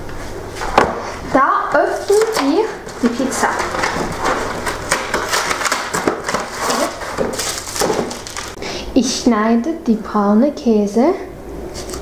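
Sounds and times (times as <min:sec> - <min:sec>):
cardboard rustling and tearing: 0:02.0 - 0:08.6.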